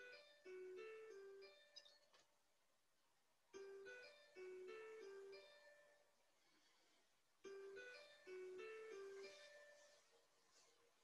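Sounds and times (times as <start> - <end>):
faint chiming melody: 3.5 - 6.2, 7.4 - 10.2.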